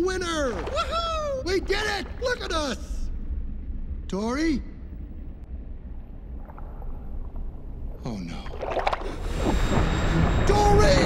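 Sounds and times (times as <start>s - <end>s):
deep underwater rumble: 0.0s - 4.1s, 4.7s - 11.0s.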